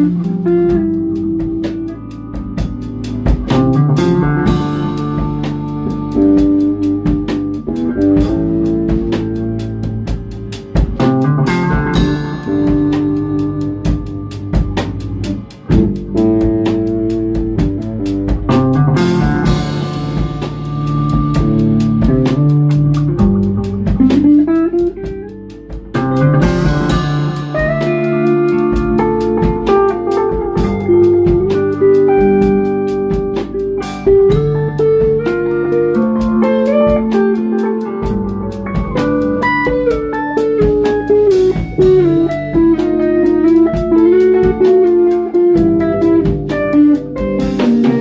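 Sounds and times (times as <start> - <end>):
instrumental blues band: 0.0 - 48.0.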